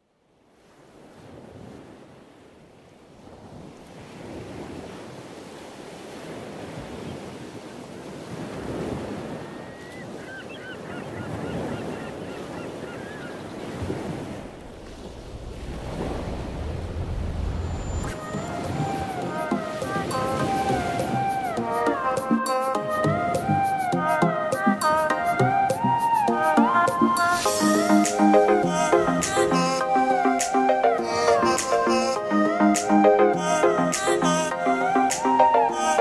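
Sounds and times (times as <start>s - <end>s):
ocean waves breaking: 0.5s - 36.0s
birds calling: 9.5s - 14.5s
music: 18.1s - 36.0s.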